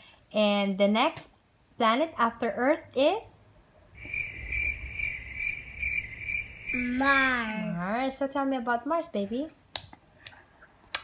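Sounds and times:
cricket chirping: 0:04.0 - 0:07.6.

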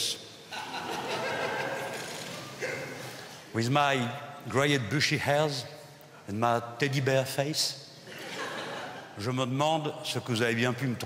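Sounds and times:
audience laughing: 0:00.5 - 0:03.1, 0:08.1 - 0:09.2.

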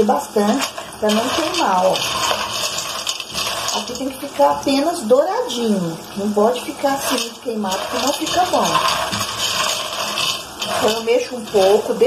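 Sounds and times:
oil sizzling: 0:00.0 - 0:12.0
pasta rattling in metal pot: 0:00.0 - 0:12.0.

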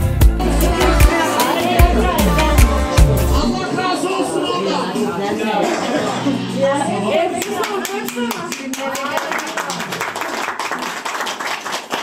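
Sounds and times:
voices talking: 0:00.4 - 0:08.0
hands clapping: 0:07.4 - 0:12.0.

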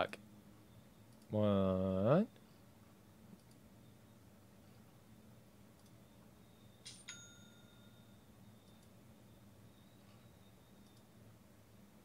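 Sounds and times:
low room hum: 0:00.0 - 0:12.0
mouse clicks: 0:03.3 - 0:03.6, 0:05.7 - 0:06.0, 0:08.6 - 0:09.0, 0:10.8 - 0:11.1
bell-like ding: 0:06.9 - 0:08.2.

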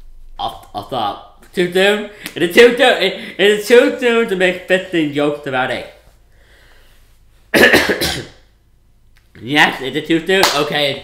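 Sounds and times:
man coughing: 0:07.5 - 0:08.5.

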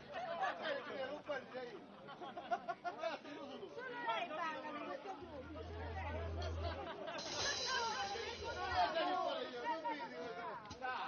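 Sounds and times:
people chatting: 0:00.0 - 0:11.0
low steady hum: 0:05.2 - 0:08.9.

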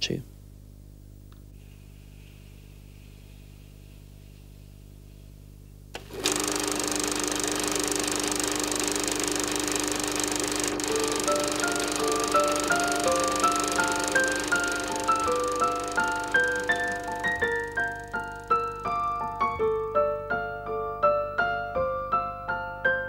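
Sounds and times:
film projector rattling: 0:06.0 - 0:19.4
tinkling keyboard melody: 0:10.7 - 0:23.0.

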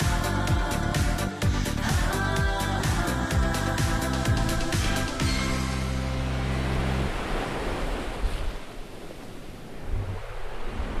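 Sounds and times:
waves washing onto shore: 0:03.8 - 0:11.0.

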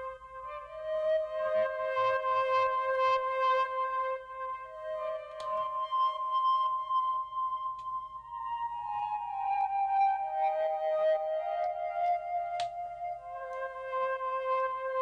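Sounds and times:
flute-like synth note: 0:00.0 - 0:15.0.

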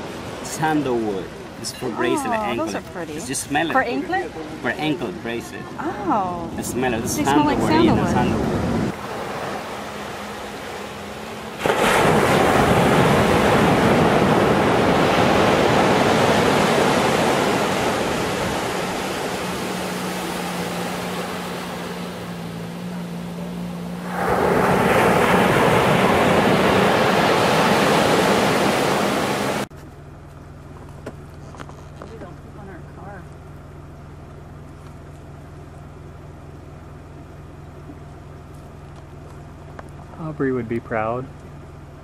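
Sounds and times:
ocean waves breaking on sand: 0:00.0 - 0:29.7.

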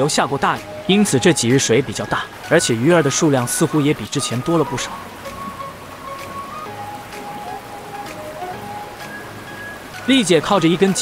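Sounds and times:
rushing river water: 0:00.0 - 0:11.0
soft background music: 0:00.0 - 0:11.0.

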